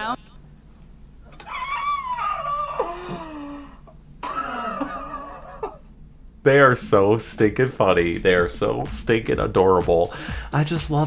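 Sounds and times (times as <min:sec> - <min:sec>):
person laughing: 0:01.4 - 0:05.8.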